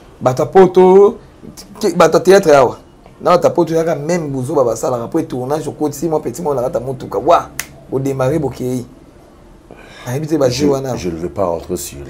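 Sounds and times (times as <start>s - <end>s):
man speaking animatedly: 0.2s - 8.9s, 10.0s - 12.0s
short sharp clicks: 7.6s - 7.8s.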